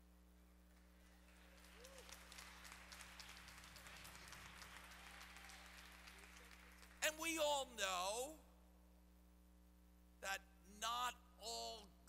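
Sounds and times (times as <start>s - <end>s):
low electrical hum: 0.0s - 12.0s
congregation applauding: 0.7s - 7.5s.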